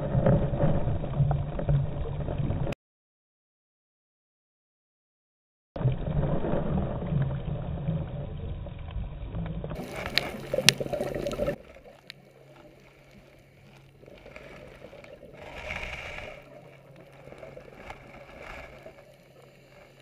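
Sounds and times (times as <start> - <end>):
steady low hum: 7.4 - 20.0
underwater hiss and gurgle: 9.7 - 20.0.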